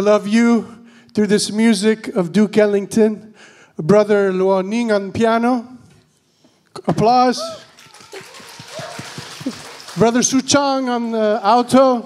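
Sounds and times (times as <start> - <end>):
audience applauding: 7.4 - 11.6.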